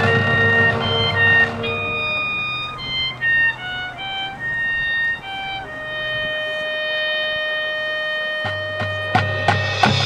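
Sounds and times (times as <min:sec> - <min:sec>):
marching band holding long note: 0:00.0 - 0:10.0.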